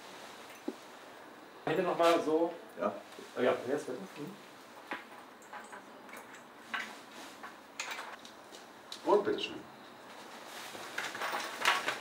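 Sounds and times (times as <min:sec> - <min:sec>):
metal chain clinking: 0:05.1 - 0:06.9, 0:11.0 - 0:12.0.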